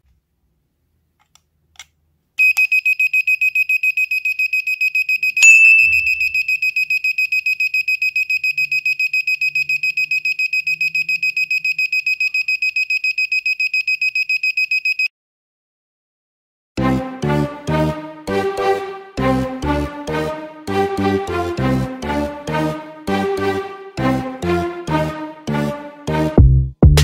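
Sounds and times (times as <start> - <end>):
buzzer beeping in fast pulses: 2.4 - 15.1.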